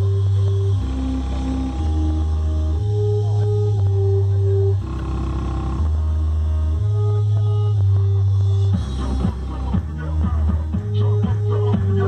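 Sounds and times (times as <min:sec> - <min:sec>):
heavy bass music from car speakers: 0:00.0 - 0:12.0
higher melody line: 0:00.0 - 0:12.0.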